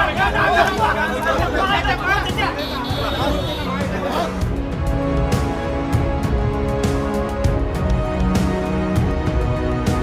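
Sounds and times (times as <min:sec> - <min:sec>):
crowd of men talking loudly: 0:00.0 - 0:04.9.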